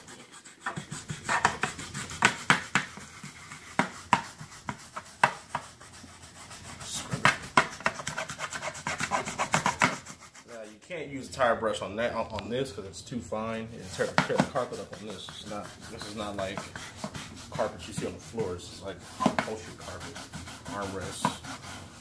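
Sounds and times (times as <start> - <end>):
brush scrubbing wet upholstery: 0.0 - 10.8, 13.8 - 22.0.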